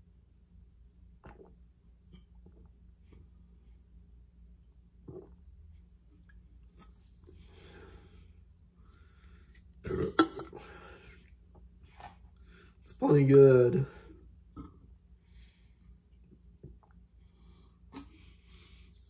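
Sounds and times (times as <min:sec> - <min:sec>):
person swallowing and breathing: 0:01.2 - 0:01.6, 0:05.0 - 0:12.8, 0:14.0 - 0:19.0.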